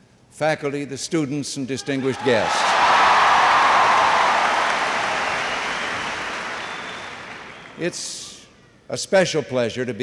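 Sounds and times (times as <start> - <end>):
audience applauding: 2.6 - 7.8.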